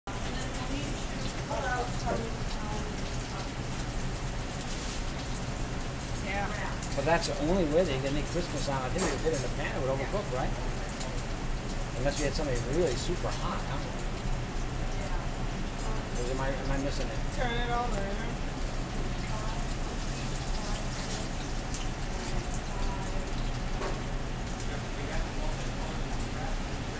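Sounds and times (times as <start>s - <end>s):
hot oil sizzling and crackling: 0.1s - 26.9s.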